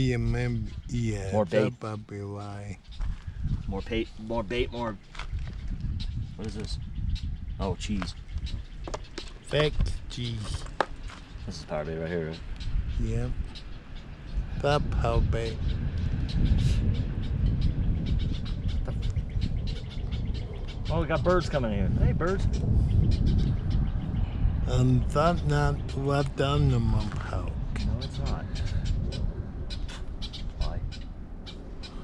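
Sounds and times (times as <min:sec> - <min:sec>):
small birds chirping: 0:00.0 - 0:32.0
steady low rumble: 0:00.0 - 0:32.0.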